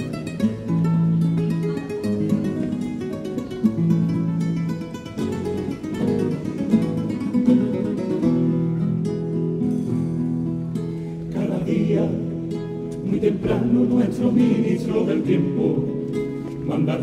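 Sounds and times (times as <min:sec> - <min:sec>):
acoustic guitars playing: 0:00.0 - 0:17.0.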